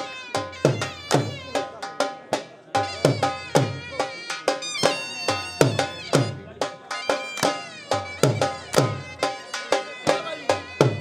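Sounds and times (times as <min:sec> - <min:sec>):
reedy shehnai melody: 0:00.0 - 0:02.2, 0:02.8 - 0:11.0
dhol drum beating: 0:00.0 - 0:11.0.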